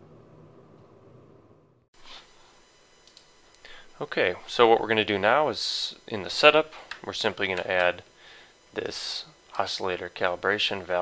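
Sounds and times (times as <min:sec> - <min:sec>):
faint clicks: 0:03.0 - 0:03.6.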